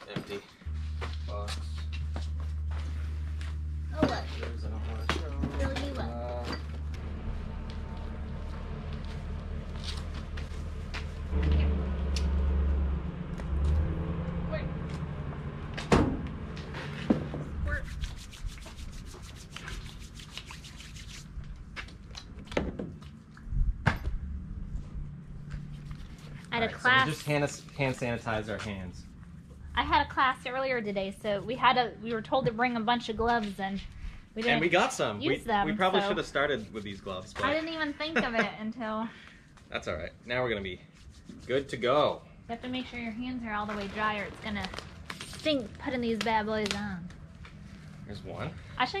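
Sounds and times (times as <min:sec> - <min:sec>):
low mechanical hum: 0:00.1 - 0:40.4.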